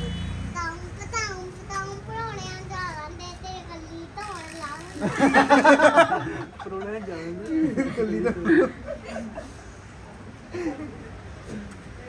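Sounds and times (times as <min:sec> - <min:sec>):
girl singing in a high voice: 0:00.5 - 0:05.0.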